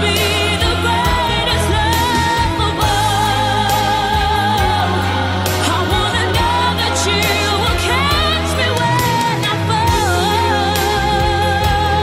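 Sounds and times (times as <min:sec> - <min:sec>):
bass and beat: 0:00.0 - 0:12.0
person singing pop song: 0:00.0 - 0:12.0.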